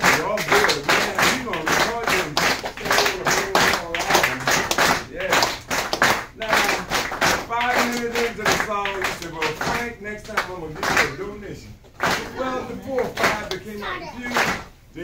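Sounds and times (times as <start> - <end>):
group clapping a steady beat: 0.0 - 15.0.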